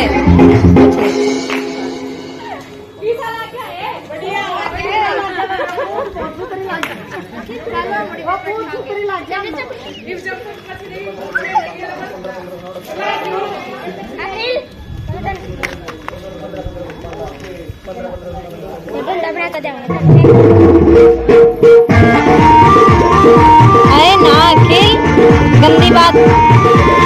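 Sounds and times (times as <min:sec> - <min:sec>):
women chatting: 0:02.4 - 0:12.3, 0:23.8 - 0:26.2.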